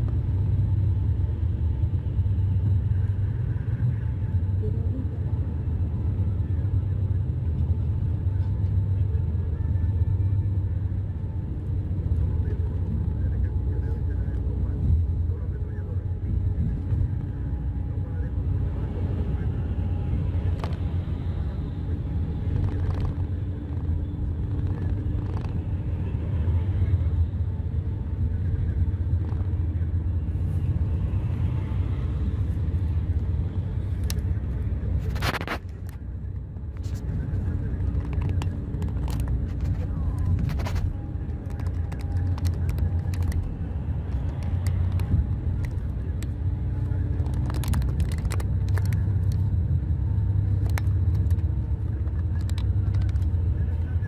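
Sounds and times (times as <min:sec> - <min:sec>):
vehicle road rumble from inside: 0:00.0 - 0:54.0.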